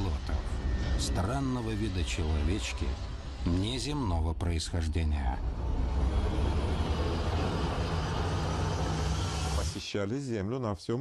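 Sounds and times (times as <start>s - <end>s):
deep hum: 0.0s - 9.8s
steady low rumble: 0.0s - 9.8s.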